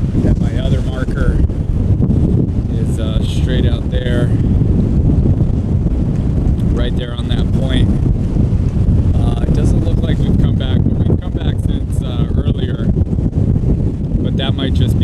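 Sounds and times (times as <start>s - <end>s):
strong wind on microphone: 0.0s - 15.0s
wind-driven water chop: 0.0s - 15.0s.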